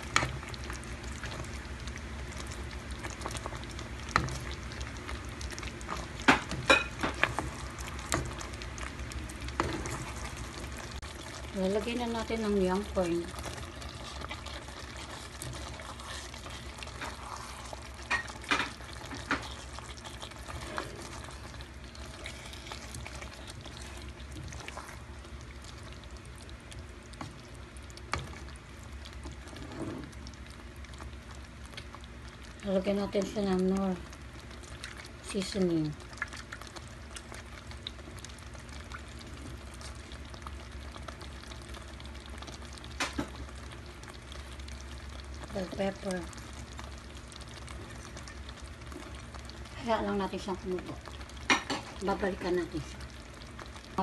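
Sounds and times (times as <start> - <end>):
low steady hum: 0.0 - 54.0
sauce simmering in a pan: 0.0 - 54.0
pops and crackles: 39.8 - 44.3.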